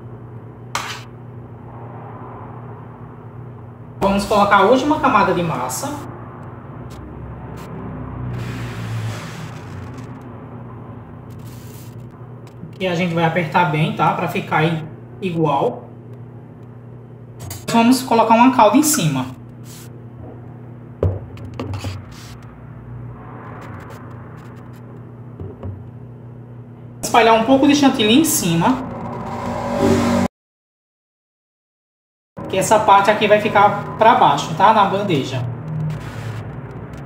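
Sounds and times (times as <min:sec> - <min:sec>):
steady hum: 0:00.0 - 0:30.3, 0:32.4 - 0:37.0
low rumble: 0:01.4 - 0:03.9, 0:22.3 - 0:26.2, 0:28.4 - 0:30.3.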